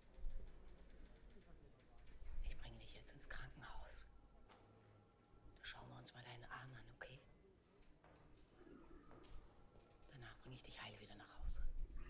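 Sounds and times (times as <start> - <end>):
faint soft-spoken tv dialogue: 0.0 - 12.0.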